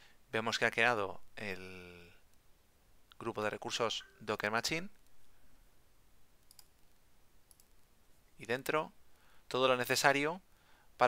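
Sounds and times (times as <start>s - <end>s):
computer mouse click: 6.4s - 7.8s.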